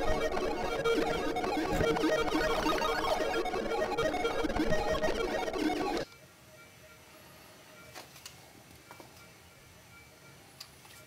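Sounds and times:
chaotic synthesizer texture: 0.0 - 6.0.

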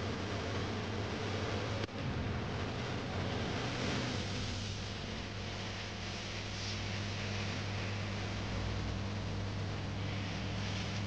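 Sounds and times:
low constant hum: 0.0 - 11.0
steady hiss: 2.5 - 11.0.

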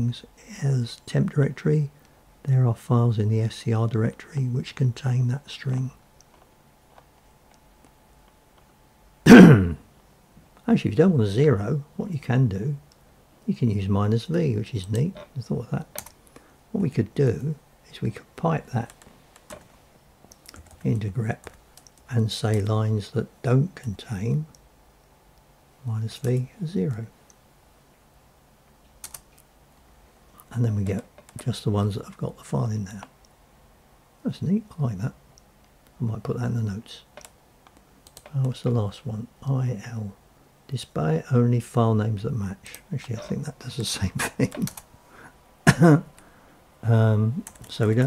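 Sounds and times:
faint steady hum: 0.0 - 48.0
person clearing throat: 9.3 - 9.9, 45.7 - 46.1.

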